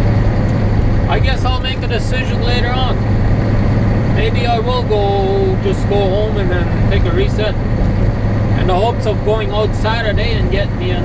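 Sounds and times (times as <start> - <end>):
diesel engine drone: 0.0 - 11.0
road noise: 0.0 - 11.0.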